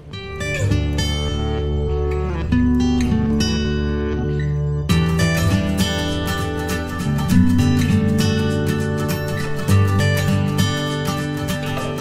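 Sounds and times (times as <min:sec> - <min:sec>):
strummed guitar chords: 0:00.0 - 0:12.0.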